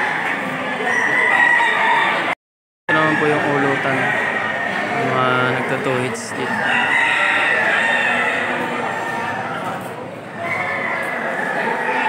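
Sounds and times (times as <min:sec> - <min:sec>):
crowd hubbub: 0:00.0 - 0:12.0
rooster crowing: 0:00.8 - 0:09.5.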